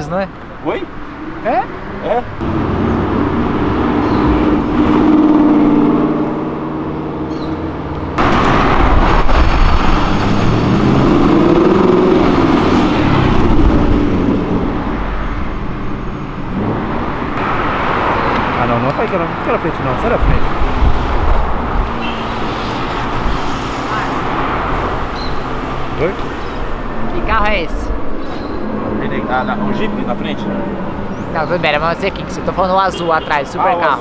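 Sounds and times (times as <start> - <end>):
sports car accelerating by: 1.2 - 18.6
car engines accelerating past: 1.8 - 26.8.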